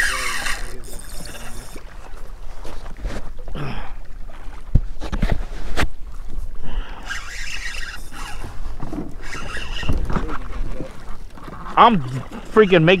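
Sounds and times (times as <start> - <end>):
fishing reel rasping: 0.0 - 1.9, 6.9 - 8.6, 9.2 - 10.1, 12.4 - 13.0.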